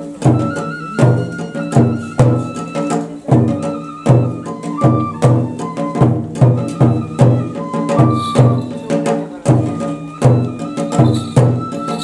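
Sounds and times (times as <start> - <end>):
drum struck in steady beat: 0.0 - 12.0
flute playing held notes: 0.0 - 12.0.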